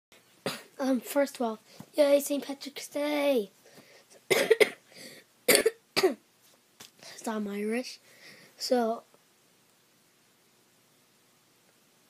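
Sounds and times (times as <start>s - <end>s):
boy coughing: 0.5s - 0.8s, 4.3s - 4.9s, 5.5s - 6.2s.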